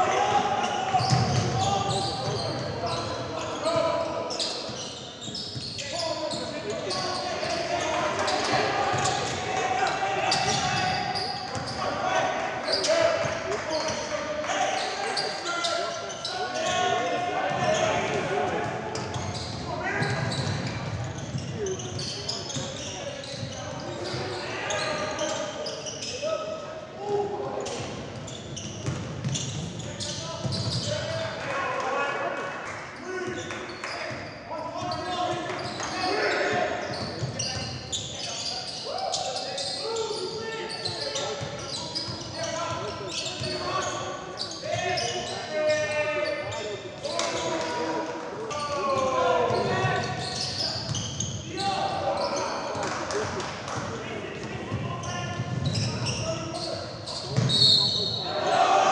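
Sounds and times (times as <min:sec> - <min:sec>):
basketball bouncing on wooden court: 0:01.0 - 0:01.6, 0:28.8 - 0:29.7, 0:55.4 - 0:55.9, 0:57.4 - 0:57.6.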